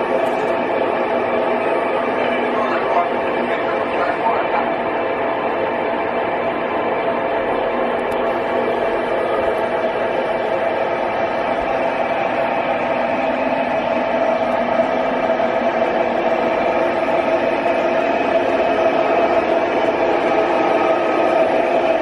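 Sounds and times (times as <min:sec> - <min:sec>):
steady hum: 0:00.0 - 0:22.0.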